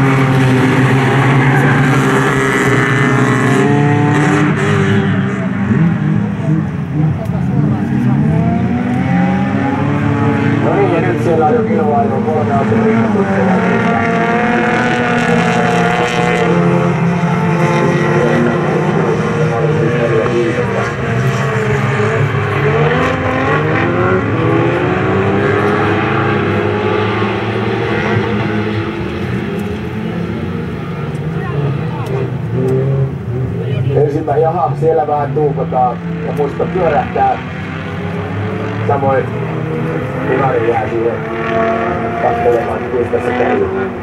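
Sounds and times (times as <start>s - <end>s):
racing car engines revving: 0.0s - 44.0s.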